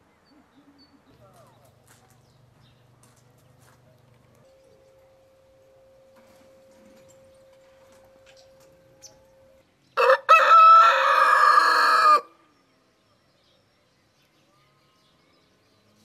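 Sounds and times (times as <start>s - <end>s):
rooster crowing: 10.0s - 12.3s.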